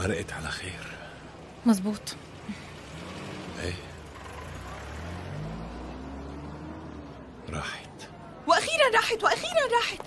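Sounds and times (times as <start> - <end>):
car engine accelerating: 0.0 - 8.4.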